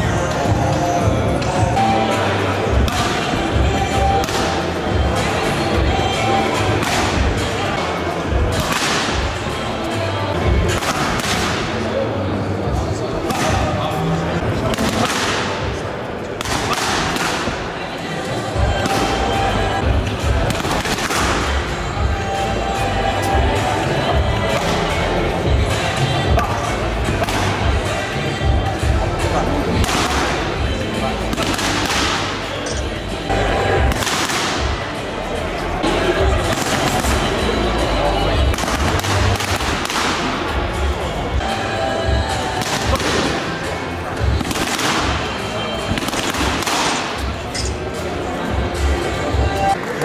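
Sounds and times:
background music: 0:00.0 - 0:50.0
boxing gloves striking mitts: 0:44.2 - 0:47.4.

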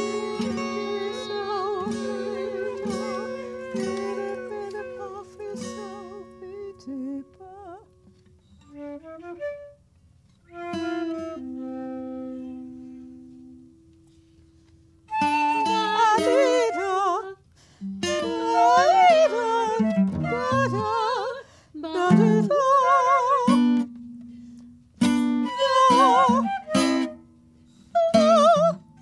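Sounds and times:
flute with vibrato: 0:00.0 - 0:07.2, 0:08.6 - 0:09.8, 0:10.4 - 0:13.6, 0:15.1 - 0:17.4, 0:18.0 - 0:23.9, 0:25.1 - 0:29.0
plucked acoustic guitar chords: 0:00.0 - 0:08.6.

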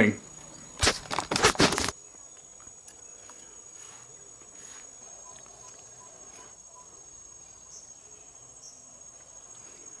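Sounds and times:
crickets trilling: 0:00.0 - 0:10.0.

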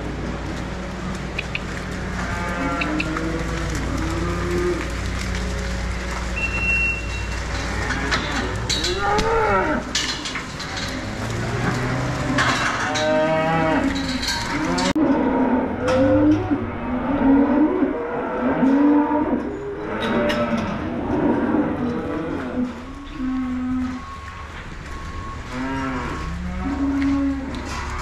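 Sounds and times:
cows mooing: 0:01.6 - 0:28.0.

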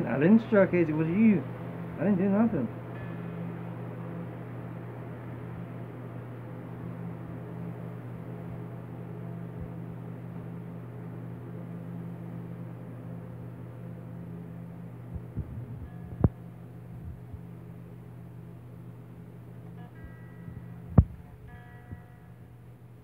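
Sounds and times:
faint guitar string notes: 0:00.0 - 0:11.8, 0:14.9 - 0:23.0
steady low hum: 0:00.0 - 0:23.0.

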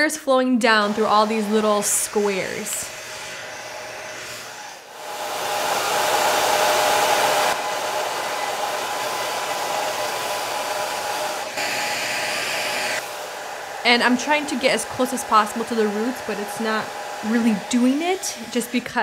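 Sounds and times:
hair dryer running: 0:00.6 - 0:19.0.

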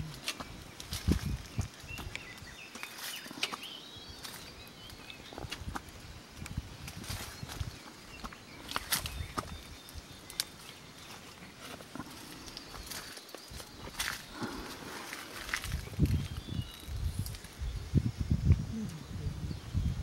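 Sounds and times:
crackles and clicks: 0:00.0 - 0:17.6.

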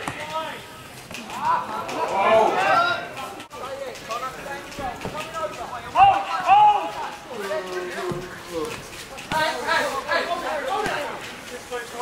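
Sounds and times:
voices shouting outdoors: 0:00.0 - 0:12.0.

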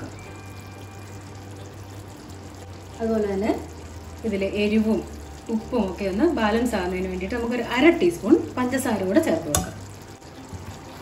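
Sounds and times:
gravy simmering: 0:00.0 - 0:11.0.

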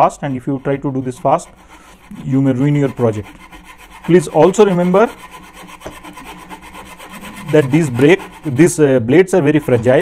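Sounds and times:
hand saw cutting brass sheet: 0:00.0 - 0:10.0.

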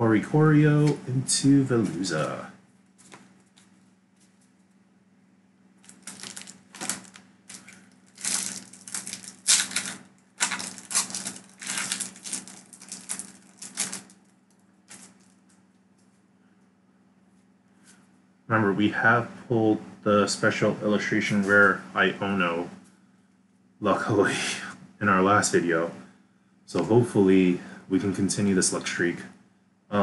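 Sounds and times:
faint low hum: 0:00.0 - 0:30.0
foil wrapper crinkling: 0:05.8 - 0:15.9.

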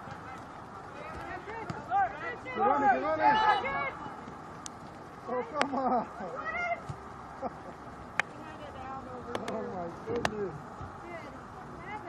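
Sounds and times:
distant shouts and calls: 0:00.0 - 0:12.0.

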